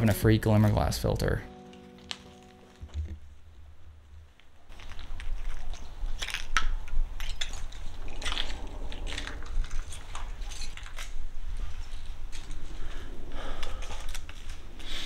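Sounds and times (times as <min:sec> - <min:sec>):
footsteps crunching over debris: 0:01.5 - 0:06.6
low rumble: 0:06.8 - 0:14.0.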